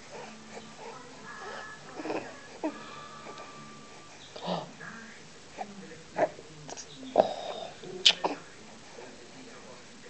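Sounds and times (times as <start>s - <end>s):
newborn baby vocalizing: 0.2s - 3.4s.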